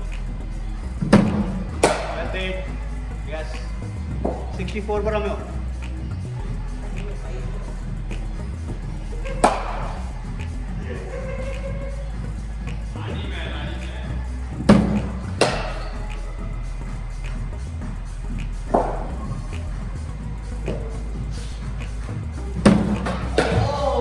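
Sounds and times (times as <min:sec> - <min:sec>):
bat striking cricket ball: 0:01.1 - 0:02.2, 0:14.7 - 0:15.8, 0:22.6 - 0:23.7.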